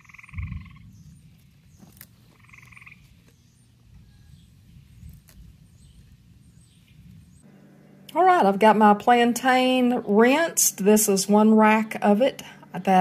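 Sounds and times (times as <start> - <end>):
frog trill: 0.0 - 0.9, 2.4 - 3.0
low steady rumble: 0.0 - 13.0
leaves snapping off by hand: 1.7 - 2.4, 5.0 - 5.5.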